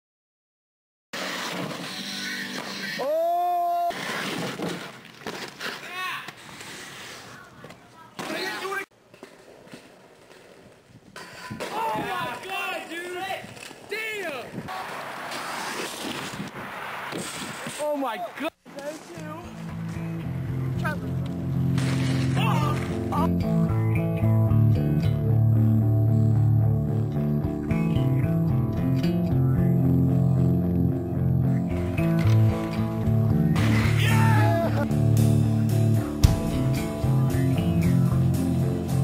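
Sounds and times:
person yelling: 0:03.0 - 0:03.9, 0:22.4 - 0:23.3, 0:34.0 - 0:34.8
people shouting: 0:03.0 - 0:04.0, 0:22.3 - 0:23.3, 0:33.8 - 0:34.9.

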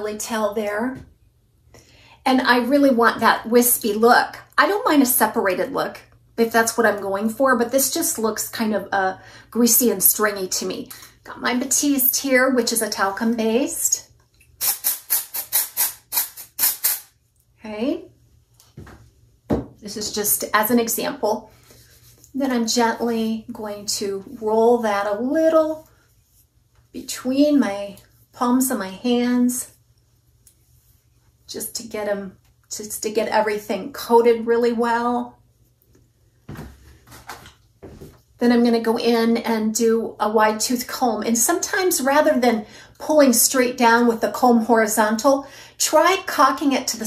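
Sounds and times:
aerosol can spray hisses: 0:14.6 - 0:17.1.

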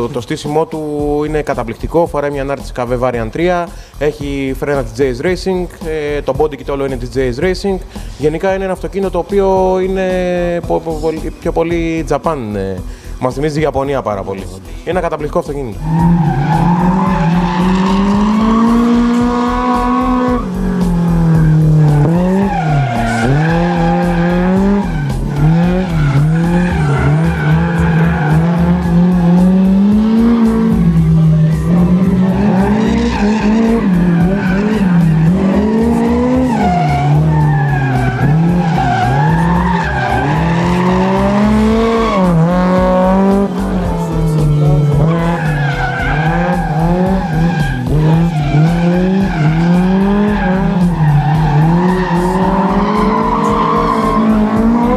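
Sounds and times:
tyre squeal: 0:15.8 - 0:29.1, 0:30.2 - 0:54.9
car engine revving hard: 0:15.8 - 0:54.9.

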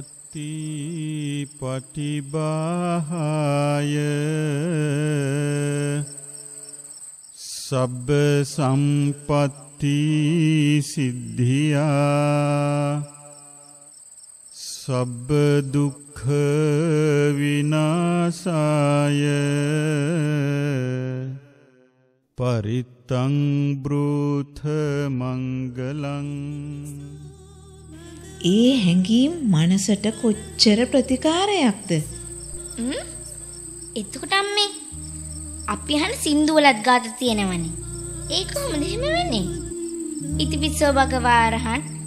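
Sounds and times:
man chanting: 0:00.0 - 0:06.2, 0:07.4 - 0:13.2, 0:14.6 - 0:21.5, 0:22.4 - 0:27.2, 0:28.0 - 0:42.0
person chanting a long note: 0:37.2 - 0:42.0.

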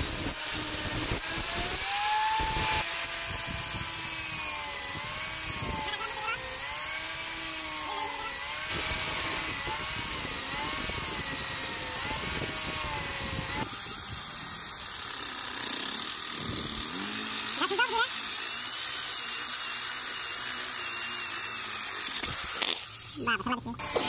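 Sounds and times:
angle grinder sanding: 0:00.0 - 0:24.0
electric drill boring into wood: 0:00.0 - 0:24.0.

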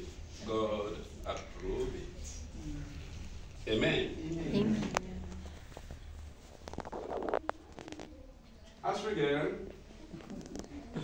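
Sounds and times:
soft rustling: 0:00.0 - 0:08.8.

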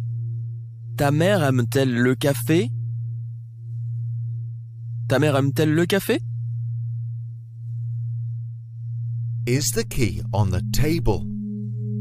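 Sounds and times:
low electronic drone: 0:00.0 - 0:12.0.

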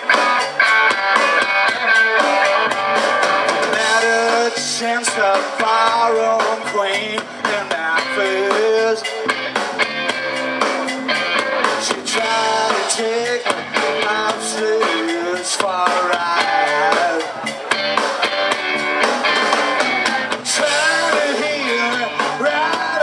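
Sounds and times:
bass guitar: 0:00.0 - 0:23.0
electric guitars: 0:00.0 - 0:23.0.

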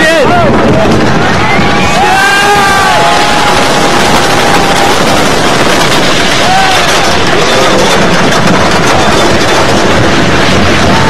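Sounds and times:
roller coaster track rumble: 0:00.0 - 0:11.0
wind rushing on microphone: 0:00.0 - 0:11.0
rider screaming: 0:01.2 - 0:05.4, 0:06.3 - 0:07.3.

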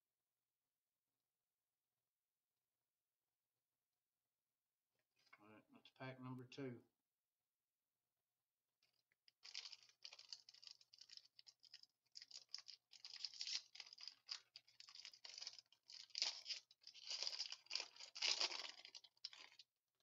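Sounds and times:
foil wrapper crinkling: 0:09.3 - 0:19.6.

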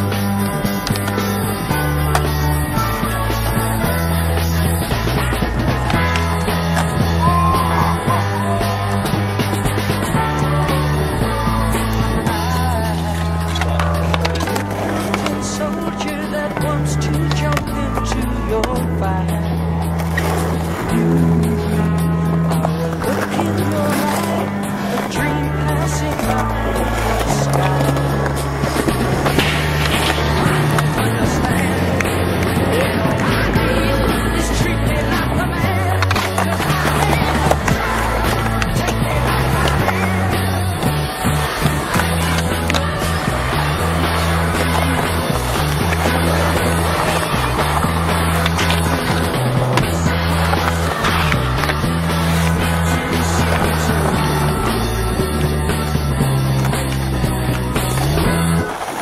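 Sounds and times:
music with bass line: 0:00.0 - 0:58.9
skateboard clacks: 0:00.0 - 0:59.0
skateboard wheels rolling on concrete: 0:00.0 - 0:59.0.

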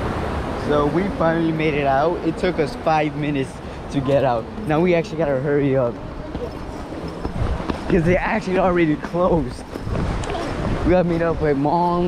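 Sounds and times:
hurried footsteps on concrete: 0:06.2 - 0:08.4.

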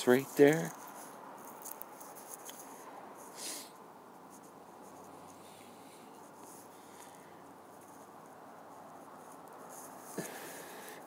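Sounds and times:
faint rustling: 0:00.0 - 0:11.0
small ticks: 0:00.6 - 0:02.7
short breathy hiss: 0:03.3 - 0:03.8.

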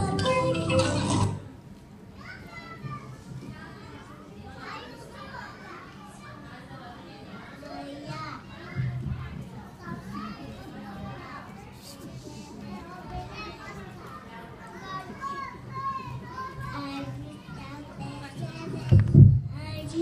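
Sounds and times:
young children talking: 0:00.0 - 0:20.0.

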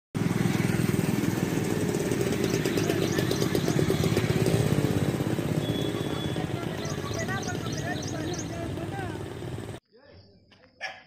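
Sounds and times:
small engine running: 0:00.2 - 0:09.8.

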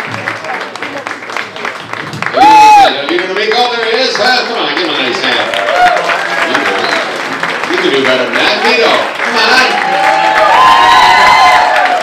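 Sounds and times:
audience cheering: 0:02.2 - 0:03.4, 0:05.0 - 0:12.0.

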